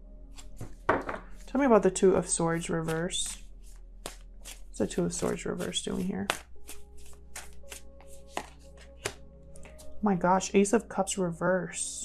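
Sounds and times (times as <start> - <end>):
soft background music: 0.0 - 12.0
cards snapping: 2.8 - 9.9.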